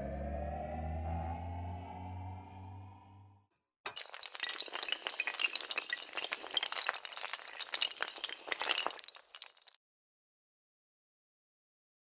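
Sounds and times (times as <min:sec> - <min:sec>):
tiles toppling like dominoes: 0:03.9 - 0:09.8.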